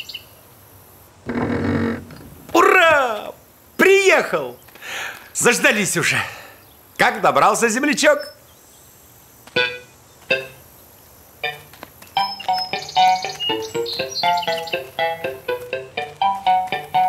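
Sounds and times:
bouncy cartoon tune: 9.6s - 10.6s, 11.4s - 17.0s
struck notes: 9.6s - 10.6s, 11.4s - 17.0s.

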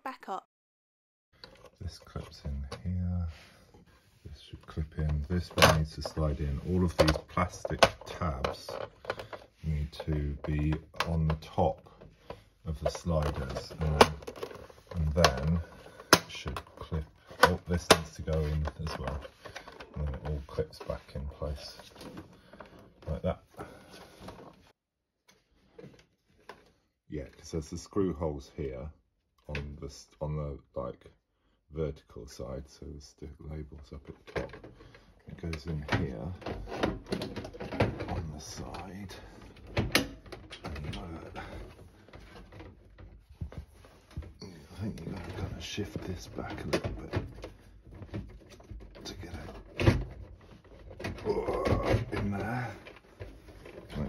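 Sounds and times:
plastic handling and scraping: 1.4s - 27.8s, 32.2s - 54.0s
plastic parts clicking and tapping: 4.9s - 23.3s, 34.0s - 54.0s
plastic housing knocked into place: 46.4s - 53.9s.

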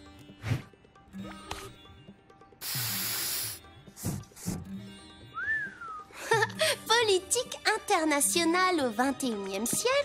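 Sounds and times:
light background music: 0.0s - 10.0s
cartoon hiss burst: 2.6s - 3.6s.

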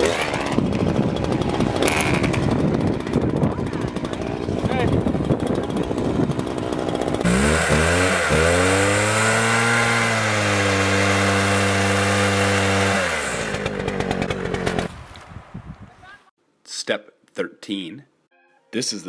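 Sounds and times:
chainsaw revving: 0.0s - 14.9s.

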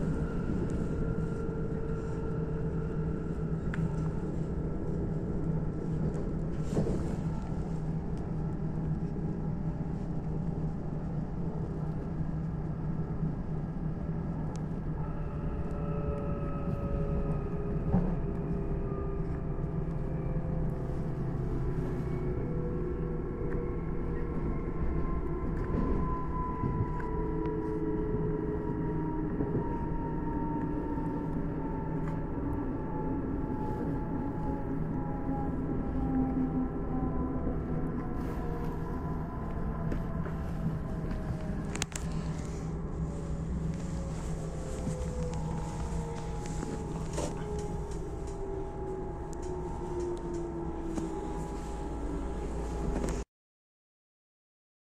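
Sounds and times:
train rumble and motor whine: 0.0s - 53.2s.

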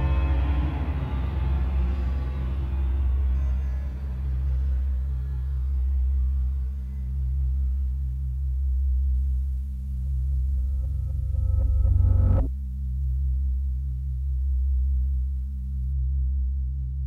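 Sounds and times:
synthesized drone: 0.0s - 13.0s
higher synth tones: 10.4s - 12.5s.

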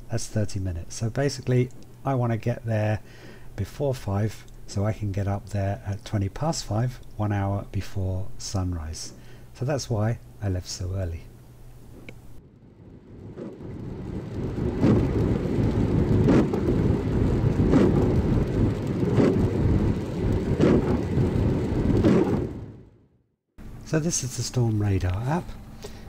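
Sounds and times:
rain and road noise in car: 12.5s - 22.8s.

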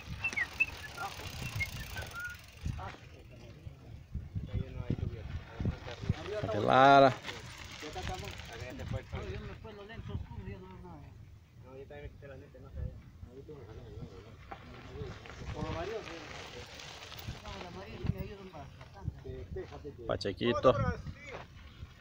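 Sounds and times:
bike tyres on gravel: 0.0s - 11.2s, 13.4s - 22.0s
bikes knocking and rattling: 0.0s - 11.6s, 12.3s - 22.0s
voices calling: 0.0s - 22.0s.

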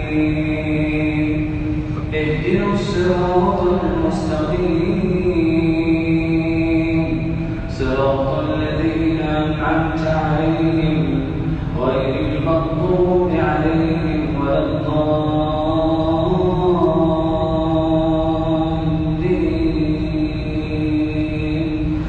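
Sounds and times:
man chanting melodically: 0.0s - 22.0s.

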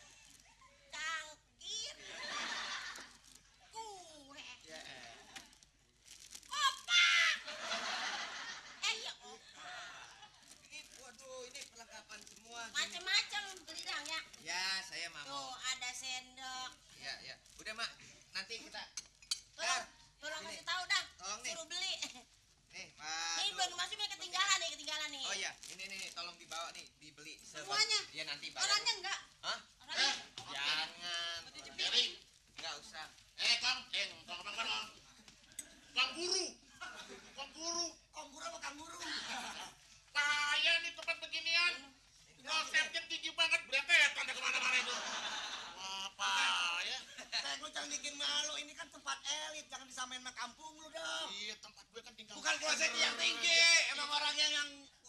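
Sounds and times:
audience laughing: 2.1s - 3.1s, 7.5s - 8.8s, 44.8s - 45.9s.

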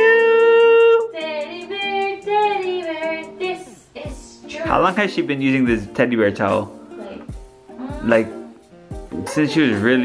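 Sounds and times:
high singing voice: 0.0s - 5.0s
music: 0.0s - 10.0s.

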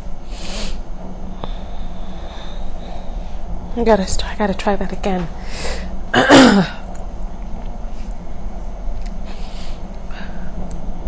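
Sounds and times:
woman clearing her throat: 6.1s - 6.8s.

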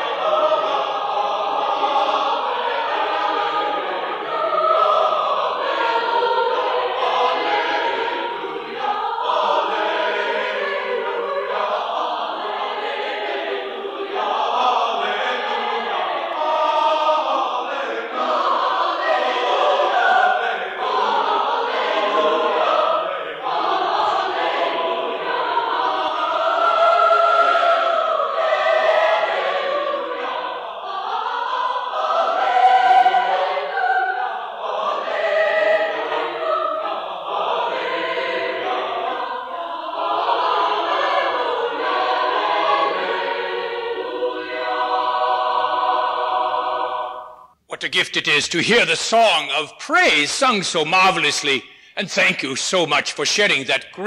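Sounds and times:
choir singing: 0.0s - 54.0s.

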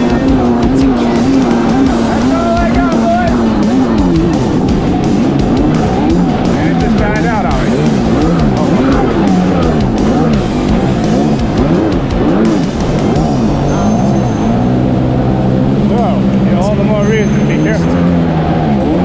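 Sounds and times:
jet ski engine at speed: 0.0s - 19.0s.

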